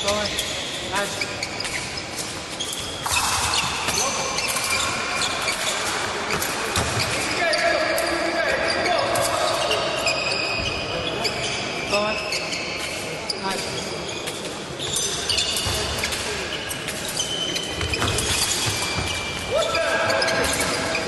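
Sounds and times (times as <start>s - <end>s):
echoing murmur of voices: 0.0s - 21.0s
shoes stamping and squeaking on floor: 9.6s - 11.6s, 14.1s - 21.0s.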